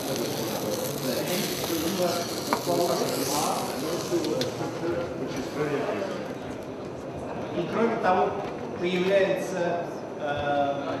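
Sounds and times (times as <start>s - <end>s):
leek sizzling in frying pan: 0.0s - 4.8s
chatter of voices: 0.0s - 7.7s.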